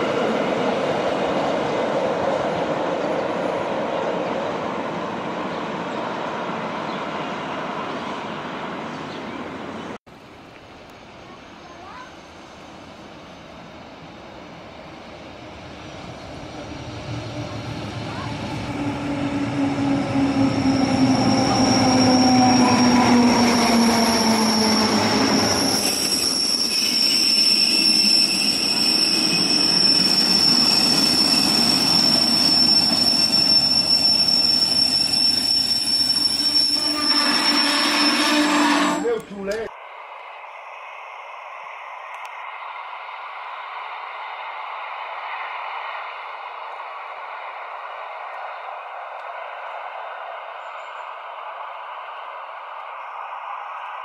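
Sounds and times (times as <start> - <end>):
distant train running: 0.0 - 54.0
train wheels squealing: 15.3 - 39.2.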